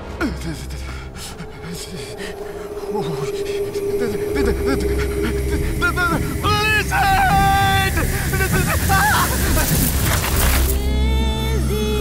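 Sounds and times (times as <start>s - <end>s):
steady held tone: 1.5s - 8.5s.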